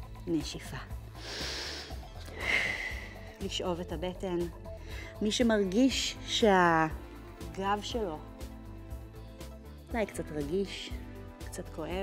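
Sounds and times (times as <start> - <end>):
background music: 0.0 - 12.0
woman breathing in: 1.2 - 3.4, 4.7 - 5.2.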